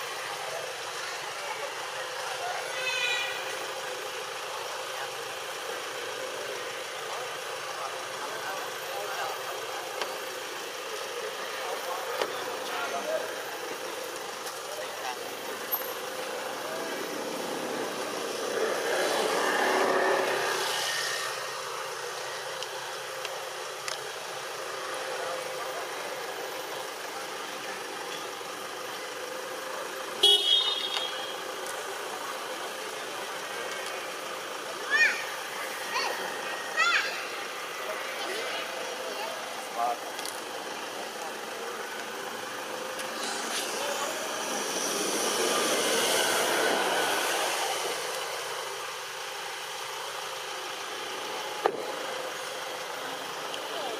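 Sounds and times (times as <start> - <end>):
traffic: 0.0 - 53.9
vehicle passing: 15.7 - 21.8, 43.1 - 48.7.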